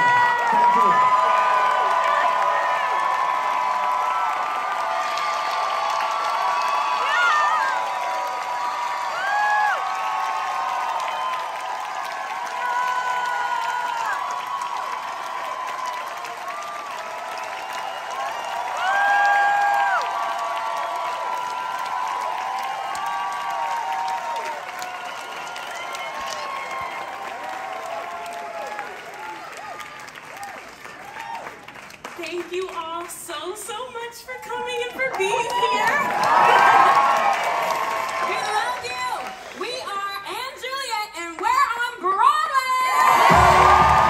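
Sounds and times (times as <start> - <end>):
high screams and whoops: 0.0 - 31.6, 35.3 - 39.4, 42.7 - 44.0
audience applauding: 0.0 - 33.5, 34.6 - 40.1, 42.7 - 44.0.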